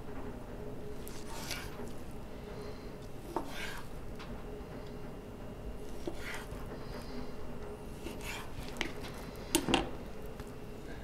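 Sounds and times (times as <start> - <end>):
knife scraping cut through meat: 1.0 - 2.0, 3.2 - 4.0, 5.8 - 7.0, 7.9 - 9.2.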